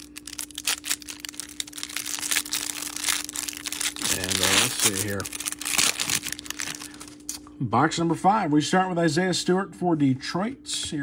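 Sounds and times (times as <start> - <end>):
plastic wrapper crinkling and tearing: 0.0 - 7.4.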